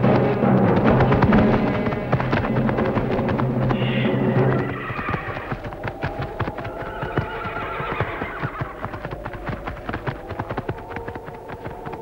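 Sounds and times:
horses galloping on dry ground: 0:00.0 - 0:12.0.

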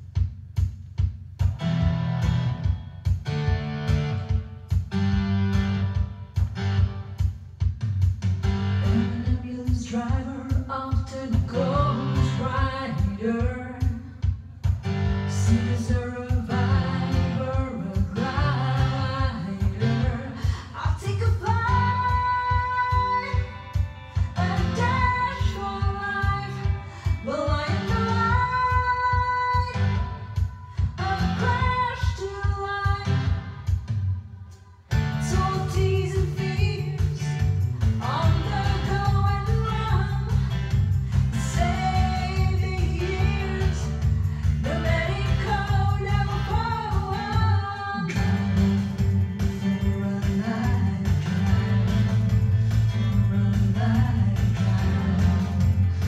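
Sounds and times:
pop backing track with beat: 0:00.0 - 0:56.0
woman singing: 0:08.8 - 0:14.3, 0:15.2 - 0:33.8, 0:35.1 - 0:56.0.

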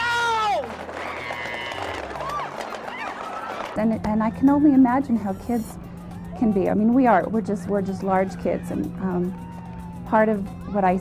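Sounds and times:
people running on pavement: 0:00.0 - 0:03.8
shouts and cries: 0:00.0 - 0:03.8.

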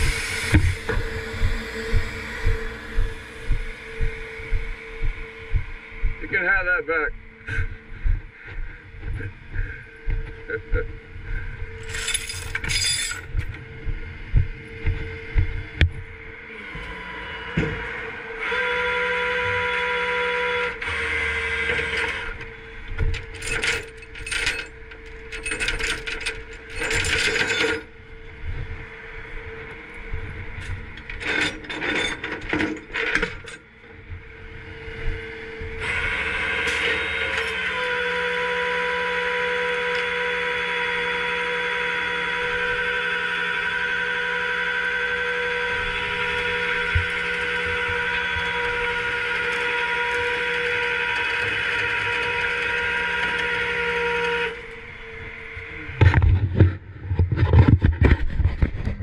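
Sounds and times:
hydraulics whining: 0:00.0 - 0:59.0
chain rattling on metal deck: 0:11.8 - 0:13.4, 0:23.1 - 0:27.9, 0:31.1 - 0:33.6.

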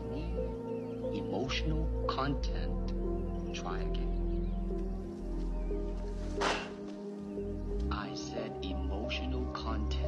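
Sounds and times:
film music with held tones: 0:00.0 - 0:10.0
kick swishing through air: 0:06.4 - 0:06.9.

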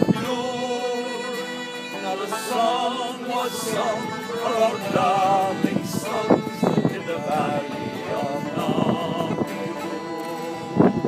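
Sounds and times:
acoustic guitar: 0:00.0 - 0:11.0
bagpipes playing: 0:00.0 - 0:11.0.

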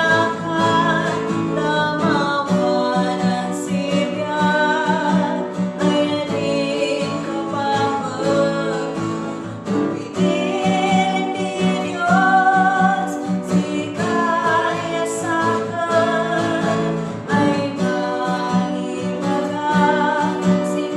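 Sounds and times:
instrumental accompaniment: 0:00.0 - 0:20.9
woman singing gospel song: 0:00.0 - 0:20.9.

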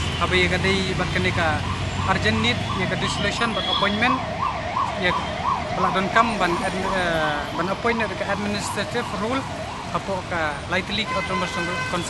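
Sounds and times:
emergency siren wailing: 0:00.7 - 0:12.0.

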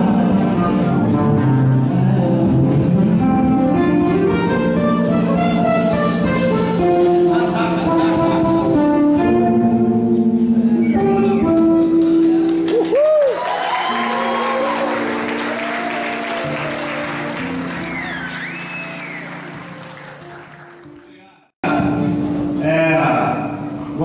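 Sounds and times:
live band playing: 0:00.0 - 0:21.0, 0:21.6 - 0:24.0
audience applauding and cheering: 0:11.8 - 0:21.4
whistling from audience: 0:17.7 - 0:19.6.

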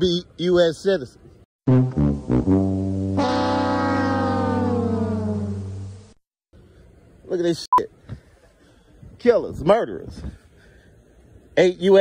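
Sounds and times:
brass-like musical notes: 0:01.7 - 0:06.2.

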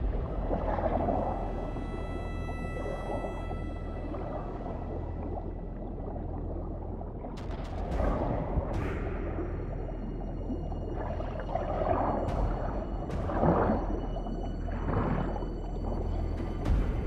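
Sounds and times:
low underwater rumble: 0:00.0 - 0:17.0.

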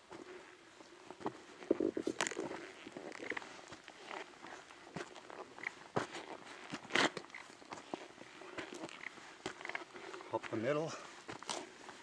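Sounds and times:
footsteps crunching on dirt trail: 0:00.0 - 0:12.0.

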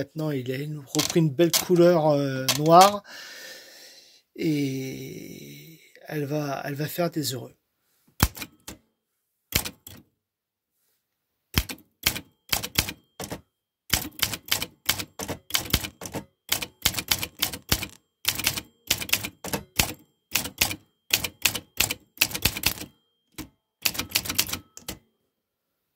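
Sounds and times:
manual typewriter key strikes: 0:00.9 - 0:03.0, 0:08.2 - 0:08.8, 0:09.5 - 0:10.0, 0:11.6 - 0:25.0.

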